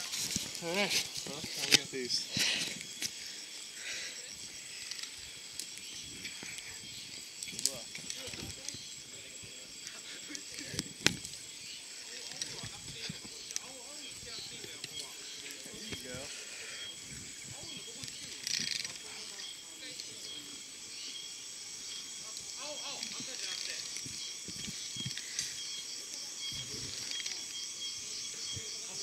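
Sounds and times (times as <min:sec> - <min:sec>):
faint voices: 0:07.5 - 0:29.0.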